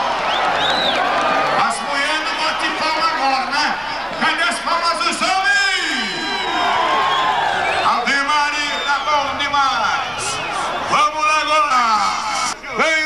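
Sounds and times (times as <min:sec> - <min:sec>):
crowd noise: 0:00.0 - 0:13.0.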